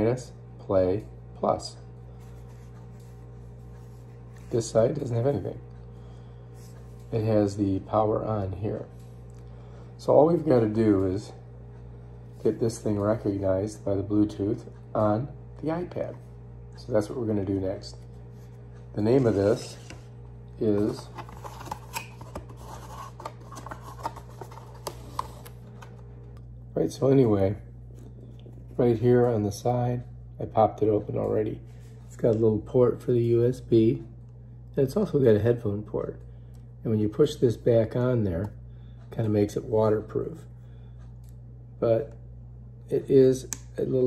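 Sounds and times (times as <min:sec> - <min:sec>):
low electrical hum: 0:00.0 - 0:44.0
cardboard rustling: 0:20.7 - 0:26.0.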